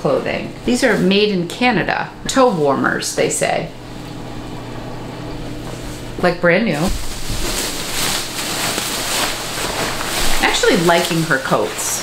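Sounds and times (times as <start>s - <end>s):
plastic bag rustling: 0.4s - 1.4s, 6.7s - 12.0s.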